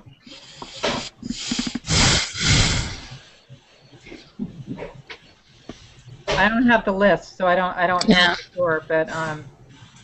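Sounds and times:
person breathing out loudly: 0:00.3 - 0:03.2.

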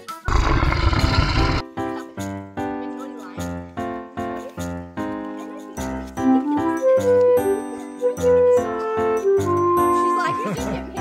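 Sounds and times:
rough animal roar: 0:00.2 - 0:01.6
background music: 0:01.1 - 0:11.0.

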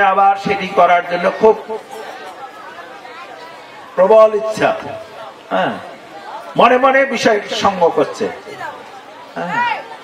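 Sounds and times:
faint chatter of voices: 0:00.4 - 0:10.0.

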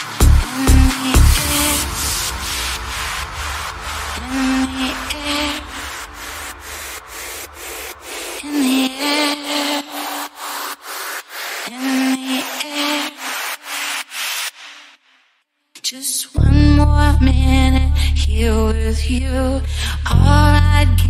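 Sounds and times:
stuttering synth dance music: 0:00.0 - 0:15.1.

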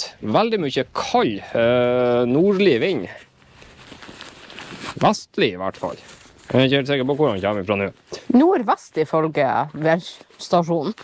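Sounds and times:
fabric rustling: 0:01.8 - 0:11.0.

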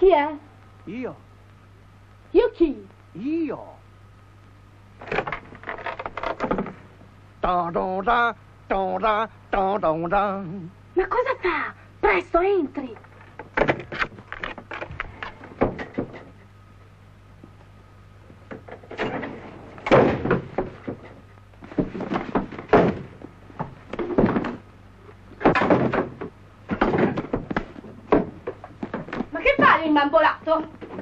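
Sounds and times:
steady low hum: 0:00.0 - 0:31.0
door shutting: 0:18.5 - 0:23.2.

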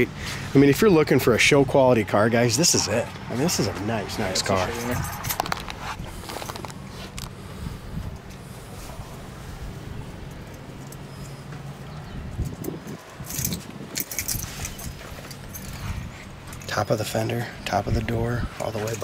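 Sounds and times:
metallic clicks and jingles: 0:04.2 - 0:07.2, 0:10.2 - 0:17.4
steady low hum: 0:05.1 - 0:19.0
camera handling noise: 0:05.4 - 0:07.4.

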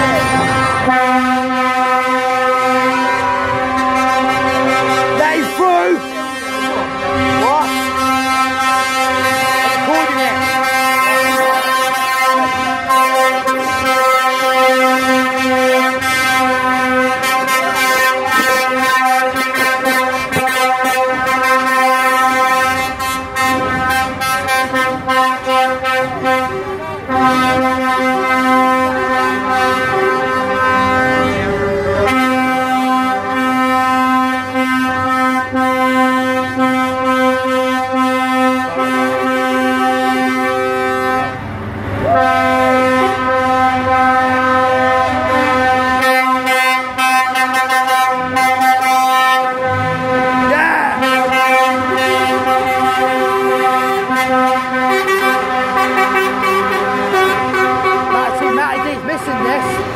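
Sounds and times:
truck air horns: 0:00.0 - 0:59.9.

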